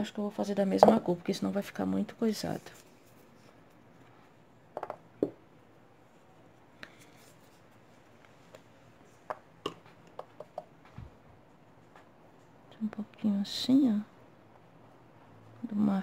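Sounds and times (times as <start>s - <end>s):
jar lids tapping on table: 0.8s - 1.0s, 4.8s - 5.4s.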